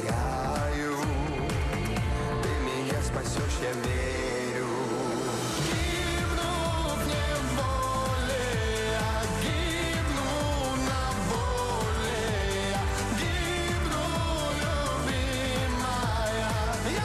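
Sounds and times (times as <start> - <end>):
steady drum beat: 0.0 - 4.4, 5.3 - 17.0
person singing: 0.0 - 17.0.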